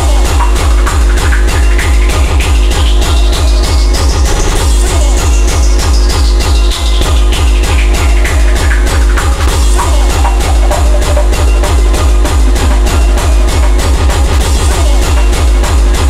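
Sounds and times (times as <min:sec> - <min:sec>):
fast kick drum: 0:00.0 - 0:16.0
synth parts: 0:00.0 - 0:16.0.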